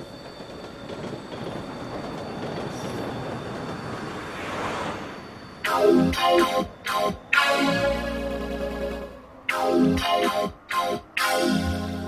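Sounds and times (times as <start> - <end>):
train running on rails: 0.0 - 12.0.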